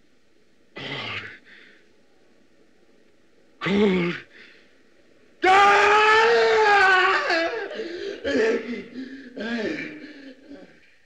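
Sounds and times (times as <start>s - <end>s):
high-pitched human scream: 5.4s - 7.7s.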